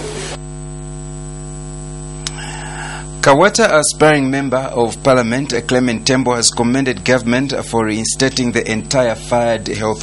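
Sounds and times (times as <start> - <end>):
faint hiss: 0.0 - 0.4, 2.2 - 3.2
electrical mains hum: 0.0 - 10.0.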